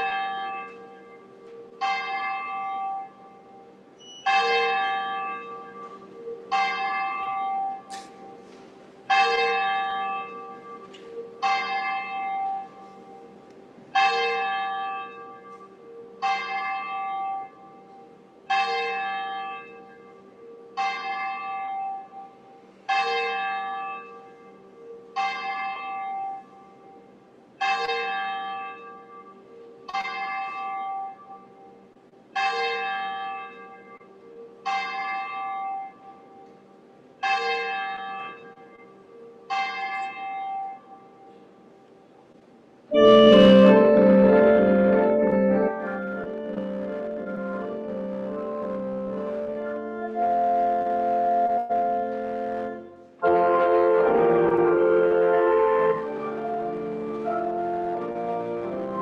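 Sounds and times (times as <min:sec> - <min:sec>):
church bell tolling: 0:00.0 - 0:41.5, 0:42.9 - 0:59.0.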